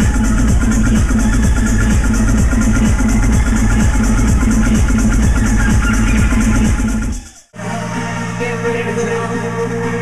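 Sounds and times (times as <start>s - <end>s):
steady kick drum: 0.0s - 7.5s
electronic dance music: 0.0s - 10.0s.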